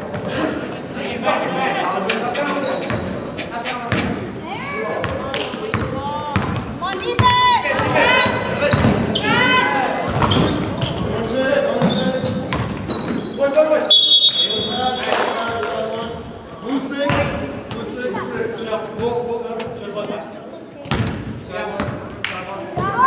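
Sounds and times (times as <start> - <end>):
players' voices: 0.0 - 23.0
sneakers squeaking on floor: 1.8 - 4.2, 5.0 - 15.6, 17.1 - 20.1.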